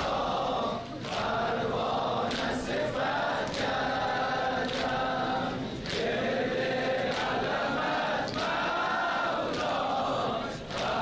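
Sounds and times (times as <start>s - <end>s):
men chanting in unison: 0.0s - 11.0s.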